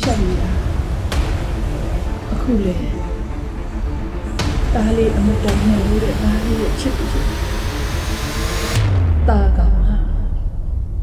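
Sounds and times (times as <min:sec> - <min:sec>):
loud rushing noise: 0:00.0 - 0:09.2.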